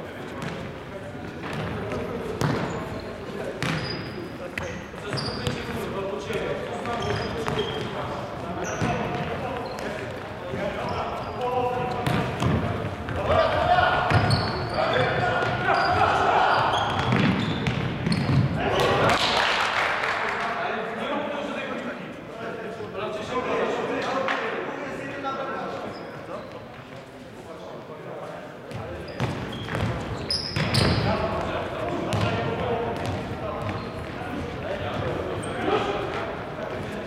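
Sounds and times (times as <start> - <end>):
shoes squeaking: 1.5 - 18.5, 28.7 - 32.3, 33.0 - 36.2
players calling out: 8.6 - 17.6.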